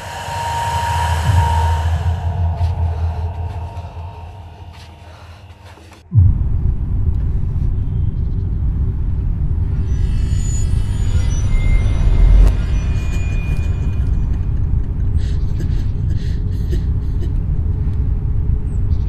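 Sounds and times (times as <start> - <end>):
heavy low hit: 0.0 - 5.1, 6.1 - 15.2
shimmer of high tones: 0.0 - 5.4, 9.8 - 15.5
low rumbling drone: 0.0 - 19.0.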